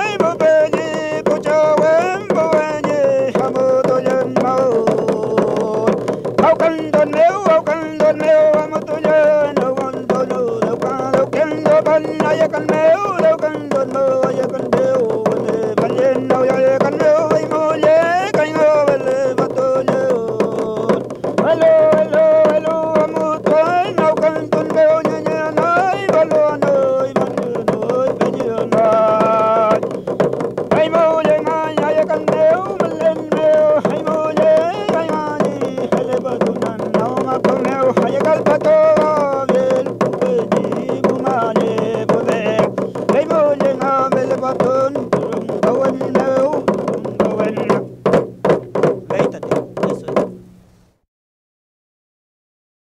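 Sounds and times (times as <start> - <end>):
solo voice singing: 0.0 - 47.9
frame drum strokes: 0.0 - 51.0.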